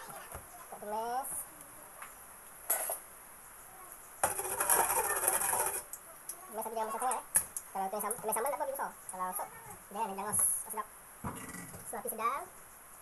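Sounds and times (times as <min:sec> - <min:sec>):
metal utensils clattering: 0:04.2 - 0:05.9.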